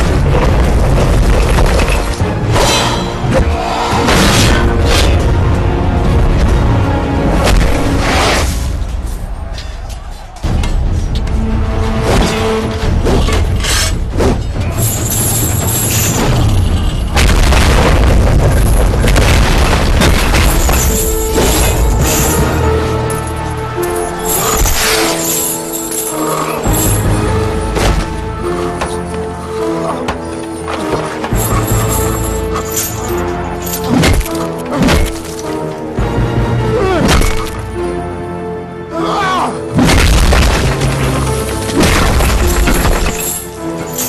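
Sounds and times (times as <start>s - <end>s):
dramatic background music: 0.0s - 44.0s
deep battle booming: 17.2s - 20.6s.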